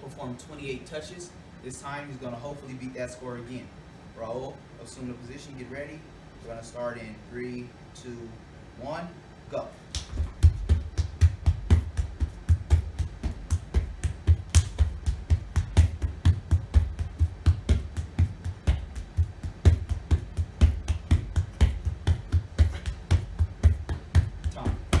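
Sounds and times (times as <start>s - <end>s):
palms slapping rubber floor: 10.0s - 25.0s.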